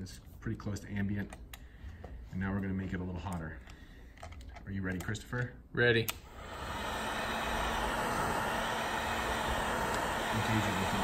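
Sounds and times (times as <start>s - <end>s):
heat gun blowing air: 6.2s - 11.0s.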